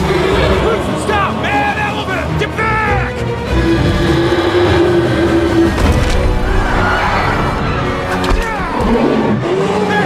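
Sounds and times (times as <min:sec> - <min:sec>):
elephant trumpeting: 0:03.6 - 0:05.8.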